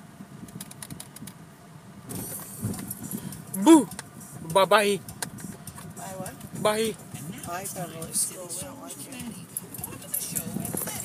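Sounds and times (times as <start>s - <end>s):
recording device rustling: 9.1s - 11.0s.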